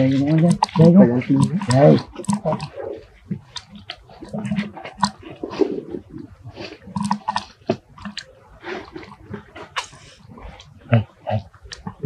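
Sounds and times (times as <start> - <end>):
infant monkey suckling: 0.0 - 12.0.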